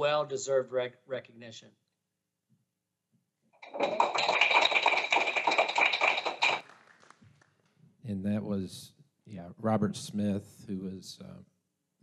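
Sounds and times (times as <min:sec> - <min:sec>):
hands clapping: 0:03.6 - 0:07.8.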